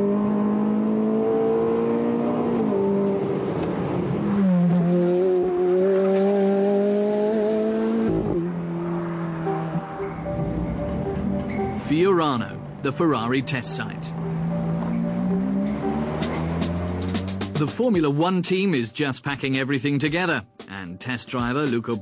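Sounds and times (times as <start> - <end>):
car engine revving under load: 0.0 - 11.8, 14.0 - 17.6.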